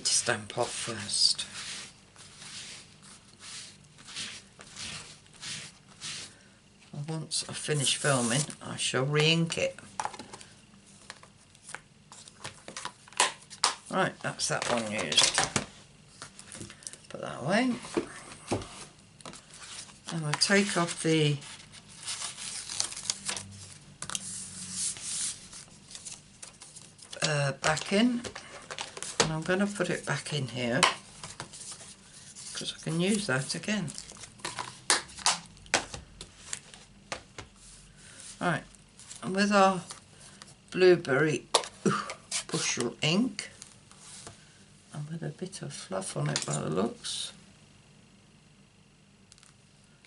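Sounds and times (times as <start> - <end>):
paper rustling: 18.7 - 37.5.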